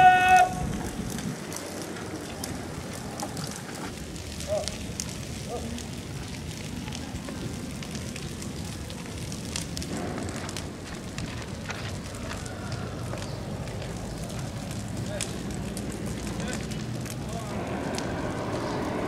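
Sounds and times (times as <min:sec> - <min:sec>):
faint distant shouts: 0:00.0 - 0:00.6
burning tyres crackling: 0:00.0 - 0:19.0
outdoor noise rush: 0:00.0 - 0:19.0.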